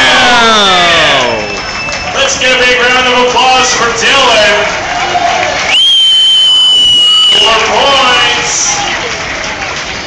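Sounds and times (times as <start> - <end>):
high-pitched whistle: 5.7 - 7.6.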